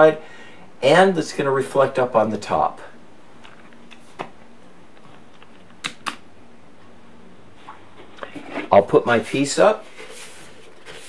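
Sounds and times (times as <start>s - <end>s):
faint steady hum: 0.0s - 11.0s
sharp clicks: 5.7s - 6.2s.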